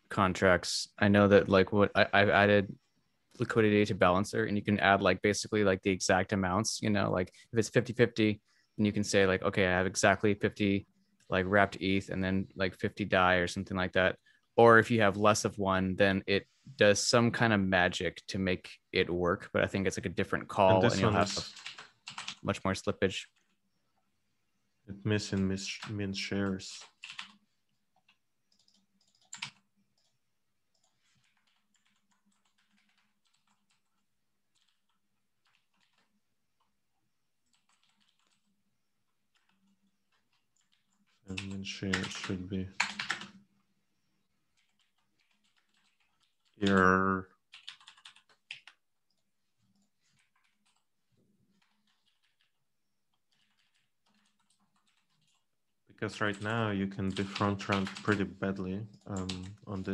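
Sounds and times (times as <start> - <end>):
computer keyboard typing: 21.2 - 22.5, 26.8 - 36.7, 37.4 - 43.4, 44.5 - 50.9, 51.5 - 55.5, 56.2 - 58.3, 59.0 - 59.6.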